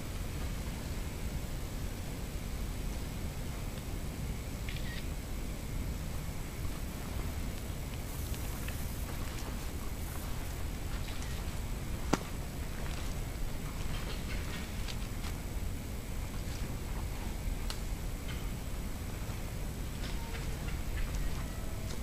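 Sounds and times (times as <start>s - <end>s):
low forest rumble: 0.0s - 22.0s
faint ticks and patters: 2.7s - 22.0s.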